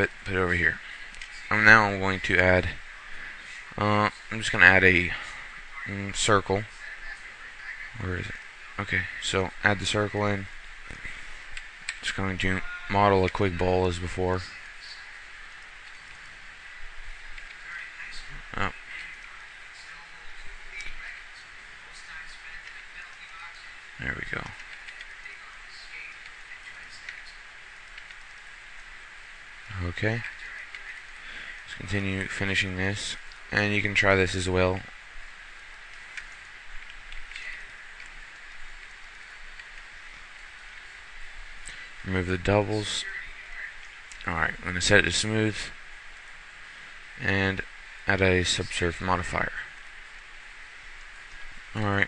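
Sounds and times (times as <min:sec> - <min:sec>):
faint background hiss: 0:00.0 - 0:52.0
faint clicks: 0:01.0 - 0:01.5, 0:10.8 - 0:13.4, 0:17.2 - 0:20.0, 0:20.7 - 0:32.3, 0:33.2 - 0:33.6, 0:34.8 - 0:42.0
soft clicks: 0:01.1 - 0:01.4, 0:24.4 - 0:28.9, 0:35.8 - 0:40.8.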